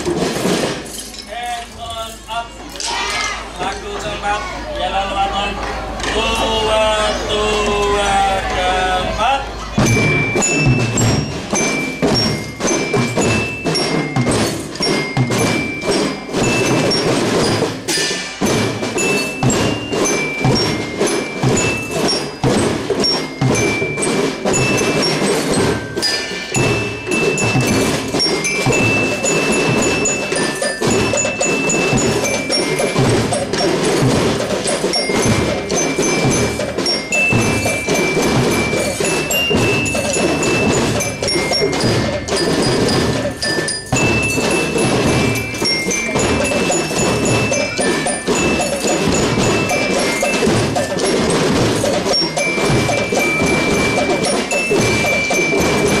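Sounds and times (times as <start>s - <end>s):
snare and bass drums beating: 0.0s - 0.9s, 9.8s - 56.0s
high melody line: 9.8s - 56.0s.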